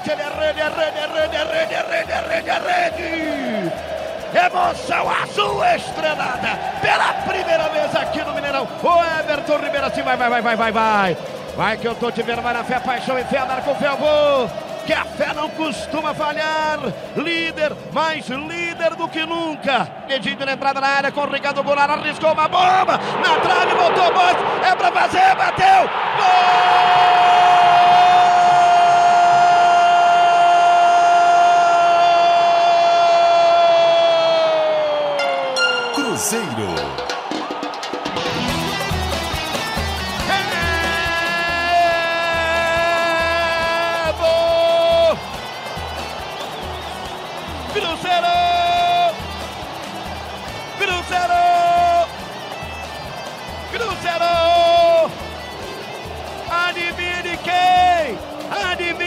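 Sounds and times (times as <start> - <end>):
music with steady beat: 0.0 - 17.9, 35.6 - 59.0
radio narrator goal cry: 0.0 - 37.1, 40.2 - 45.3, 46.2 - 49.3, 50.7 - 52.2, 53.6 - 55.2.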